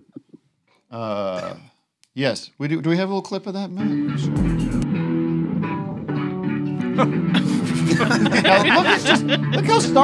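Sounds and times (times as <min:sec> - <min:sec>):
bass guitars playing a groove: 0:03.8 - 0:10.0.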